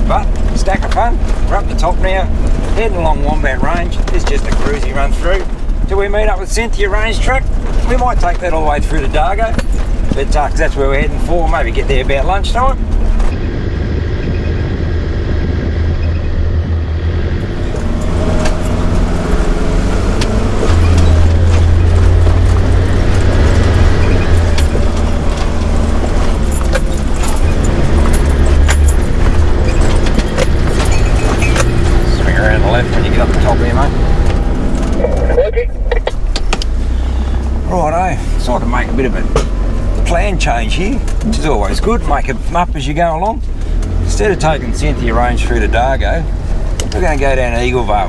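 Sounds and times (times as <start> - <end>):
vehicle engine running: 0.0 - 48.0
loose gear rattling: 20.2 - 35.3.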